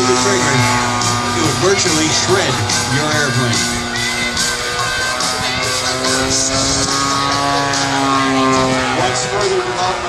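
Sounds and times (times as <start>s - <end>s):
guitar background music: 0.0s - 10.0s
model plane engine droning: 0.0s - 10.0s.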